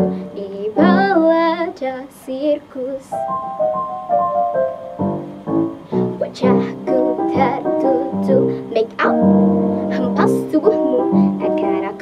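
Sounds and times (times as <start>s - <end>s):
girl singing: 0.0s - 3.3s, 6.0s - 12.0s
backing music: 3.2s - 8.3s.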